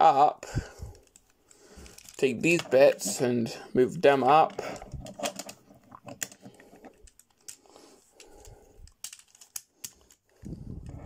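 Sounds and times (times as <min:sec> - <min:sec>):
rubbing handling noise: 0:00.0 - 0:11.0
plastic toy parts clicking: 0:00.9 - 0:03.2, 0:04.4 - 0:11.0.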